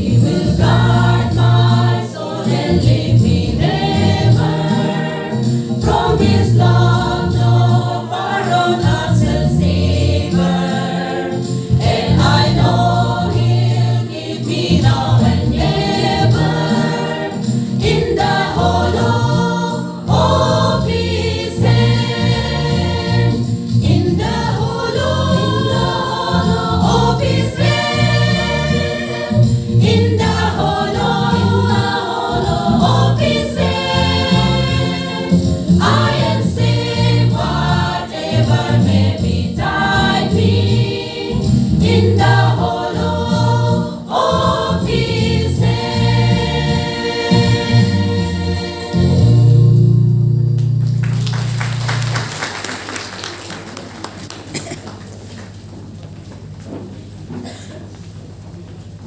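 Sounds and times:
women's choir singing: 0.0 - 49.6
low bass accompaniment: 17.8 - 52.1.

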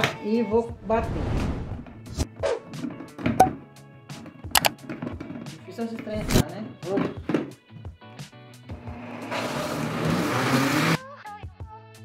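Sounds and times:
background music: 1.8 - 12.0
blender jar knocks and clicks: 4.6 - 4.8.

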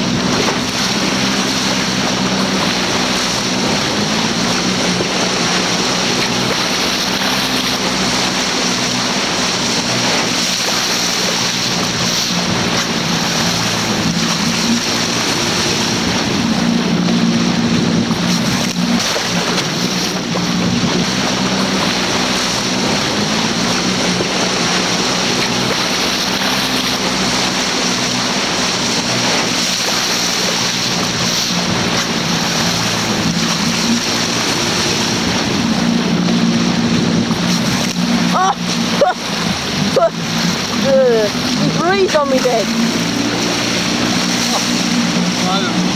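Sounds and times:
motorboat engine humming: 0.0 - 45.9
water rushing along hull: 0.0 - 45.9.

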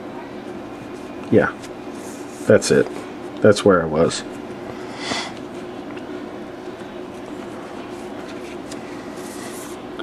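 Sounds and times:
low room hum: 0.0 - 10.0
cord rustling and sliding: 7.2 - 9.8.

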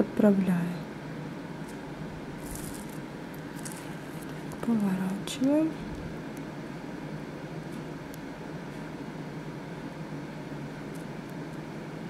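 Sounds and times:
plastic bag crinkling: 2.4 - 4.6.

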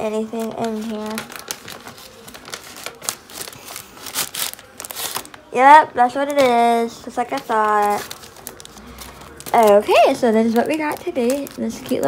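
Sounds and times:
cardboard packaging rustling: 0.3 - 5.5, 6.2 - 12.0.

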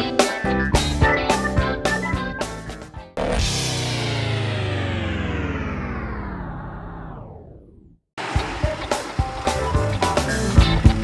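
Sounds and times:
outro music sliding down in pitch: 3.2 - 7.6.

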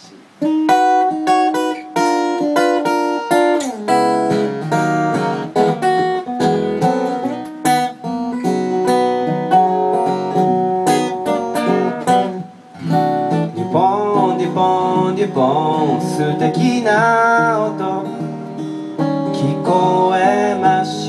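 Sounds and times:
acoustic guitars strumming: 0.0 - 21.0.

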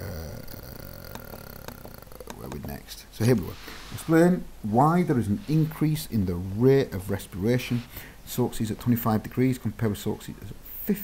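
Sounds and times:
person saying uh: 0.0 - 2.9.

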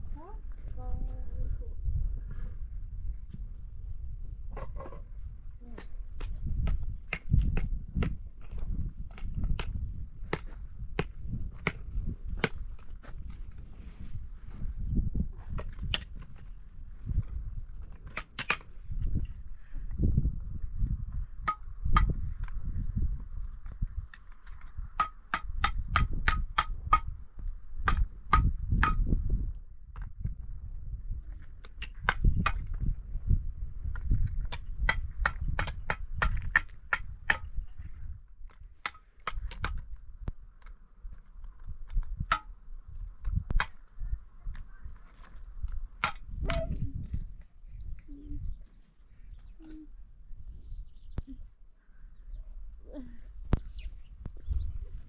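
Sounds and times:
low uneven rumble: 0.0 - 2.4
trowel tapping concrete blocks: 24.1 - 27.1, 27.8 - 29.1, 33.9 - 37.6.

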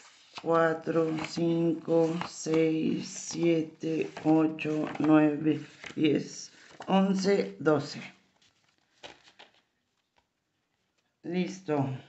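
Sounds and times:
paper sheets tapping and rustling: 0.0 - 11.0.

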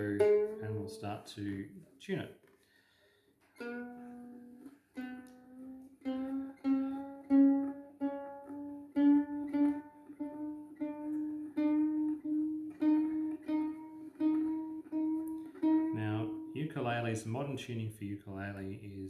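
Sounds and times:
ukulele string plucked rising pitch: 0.0 - 1.6, 3.6 - 17.0.

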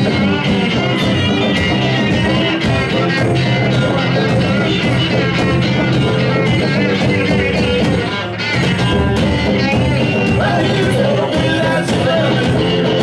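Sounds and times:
live garage rock band: 0.0 - 13.0.

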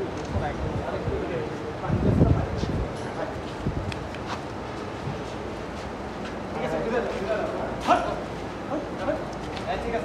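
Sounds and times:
men's voices: 6.4 - 10.0.

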